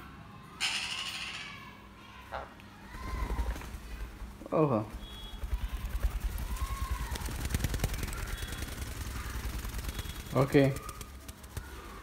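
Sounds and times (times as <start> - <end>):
bird wings flapping: 2.9 - 12.0.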